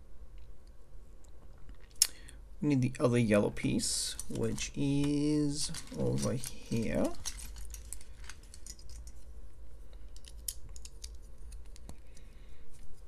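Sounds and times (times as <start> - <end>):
steady low hum: 0.0 - 13.0
plastic bricks clicking and rattling: 4.1 - 9.2.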